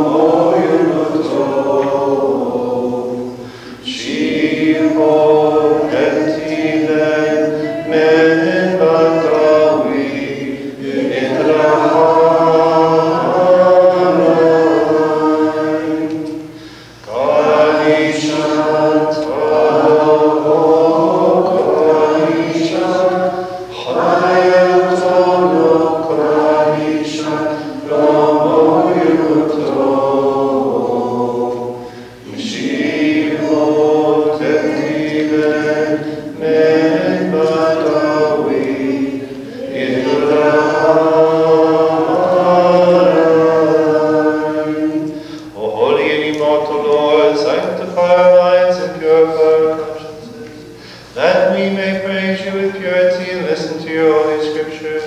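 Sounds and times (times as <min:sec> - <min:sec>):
liturgical chant: 0:00.0 - 0:55.0.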